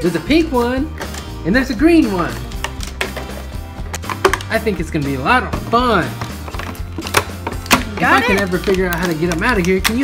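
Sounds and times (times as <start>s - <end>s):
background music: 0.0s - 10.0s
plastic packaging crackling: 6.2s - 10.0s.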